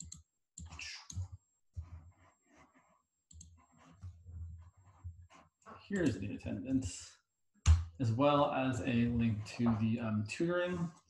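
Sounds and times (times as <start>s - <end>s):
keyboard and mouse clicks: 0.0s - 2.0s, 3.3s - 4.1s, 6.0s - 6.2s.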